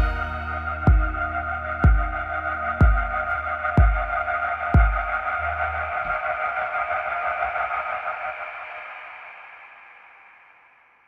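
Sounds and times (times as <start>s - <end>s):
low bass note: 0.0s - 3.4s
held keyboard chord: 0.0s - 4.2s.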